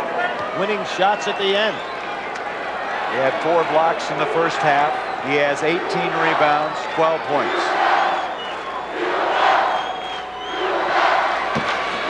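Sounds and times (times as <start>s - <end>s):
arena crowd yelling and cheering: 0.0s - 12.0s.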